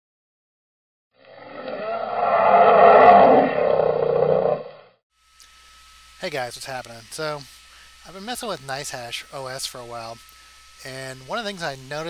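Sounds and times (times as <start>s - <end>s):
loud roar: 1.2s - 5.0s.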